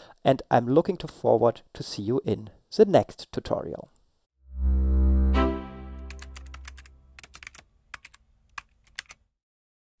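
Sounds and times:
low musical tone: 0:04.4 - 0:07.2
keyboard typing clicks: 0:06.1 - 0:09.2.

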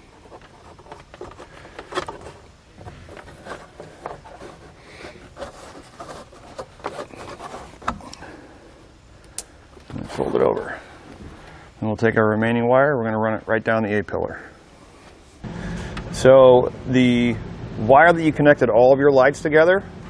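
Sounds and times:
wires rubbing and rustling: 0:00.0 - 0:12.2.

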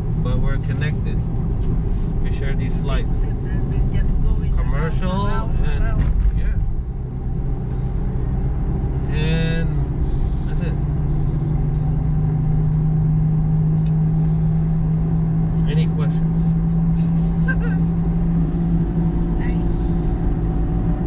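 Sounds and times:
car engine and tyre drone: 0:00.0 - 0:21.0.

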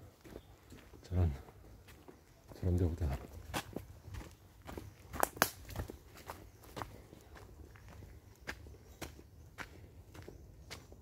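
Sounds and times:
footsteps crunching on dry leaves: 0:00.2 - 0:11.0.

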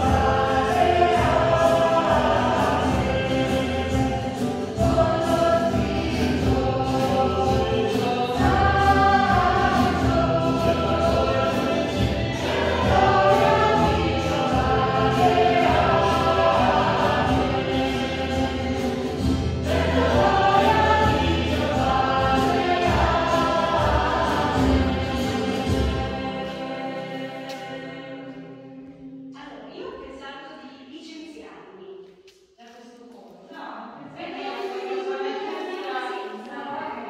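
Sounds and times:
choir singing sacred music: 0:00.0 - 0:29.4, 0:33.8 - 0:37.0.

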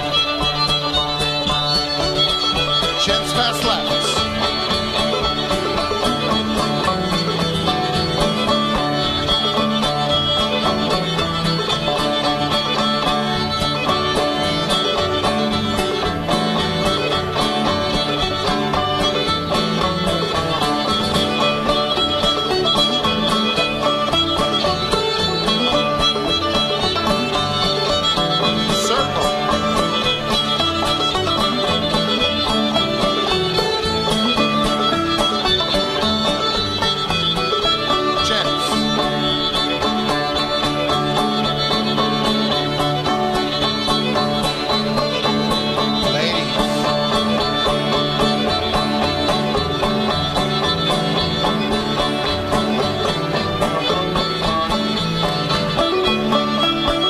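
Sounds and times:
string band dance tune: 0:00.0 - 0:57.0.

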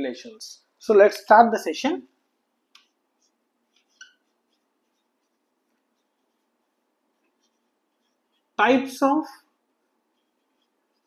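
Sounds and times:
marker squeaking on whiteboard: 0:02.6 - 0:08.6, 0:09.3 - 0:11.0.

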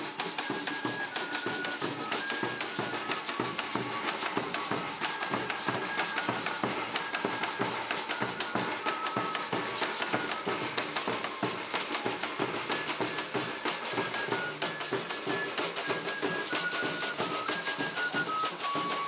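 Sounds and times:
drums and hand percussion: 0:00.0 - 0:19.0
wooden flute melody: 0:00.0 - 0:19.0.

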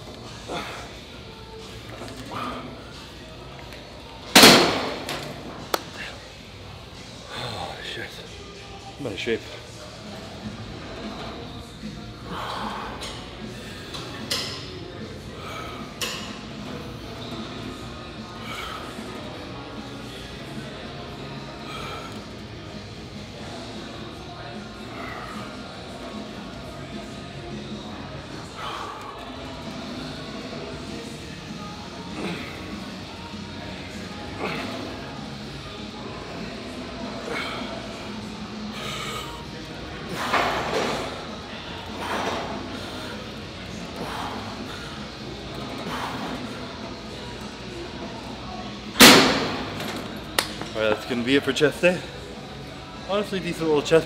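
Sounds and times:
music playing: 0:00.0 - 0:54.0.

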